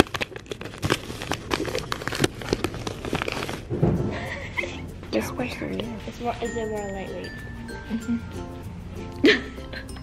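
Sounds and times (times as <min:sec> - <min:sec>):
soft background music: 0:03.8 - 0:10.0.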